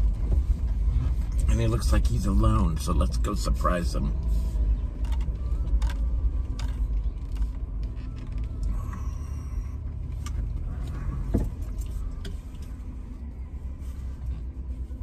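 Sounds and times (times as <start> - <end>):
car engine rumble: 0.0 - 15.0
road noise inside car: 0.0 - 15.0.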